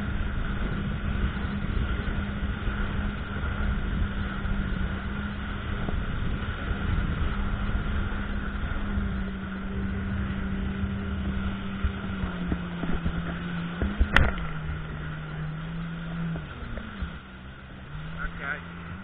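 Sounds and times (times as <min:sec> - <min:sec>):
jet ski engine running: 0:00.0 - 0:19.0.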